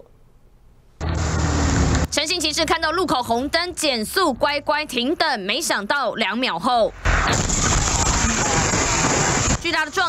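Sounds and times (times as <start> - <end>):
engine running: 1.0 - 2.1.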